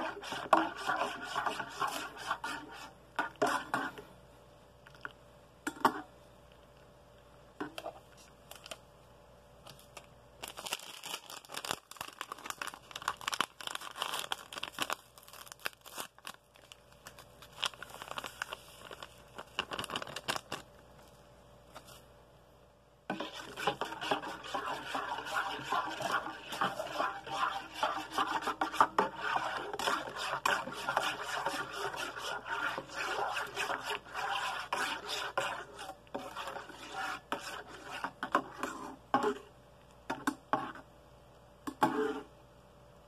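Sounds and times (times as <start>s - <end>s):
utensil scraping metal cup: 0.0s - 4.0s, 23.1s - 39.4s, 41.8s - 42.3s
paper sachet crinkling and tearing: 9.9s - 20.7s.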